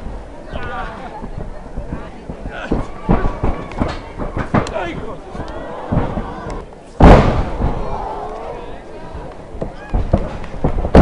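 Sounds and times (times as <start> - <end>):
crowd voices: 0.0 - 11.0
wrestlers slapping and thudding: 1.8 - 8.4.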